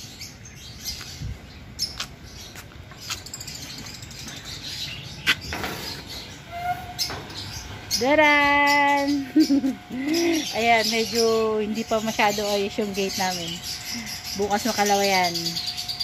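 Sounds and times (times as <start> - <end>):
bird chirps: 0.0 - 16.0.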